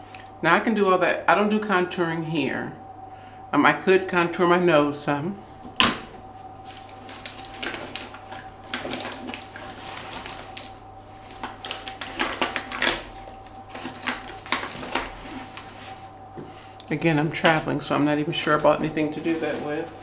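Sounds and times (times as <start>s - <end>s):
faint steady tone: 0.0s - 11.8s.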